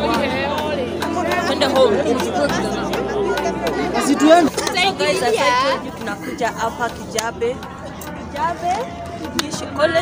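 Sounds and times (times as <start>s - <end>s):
crowd hubbub: 0.0s - 10.0s
voices talking close by: 0.0s - 10.0s.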